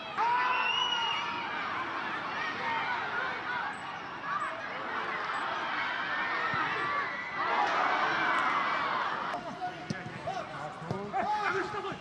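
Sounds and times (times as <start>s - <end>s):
players calling and shouting: 0.0s - 12.0s.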